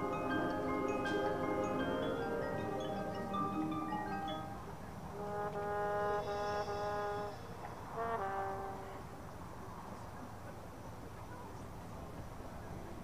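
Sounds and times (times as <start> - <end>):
brass band chords: 0.0 - 9.1
open-air background: 0.0 - 13.0.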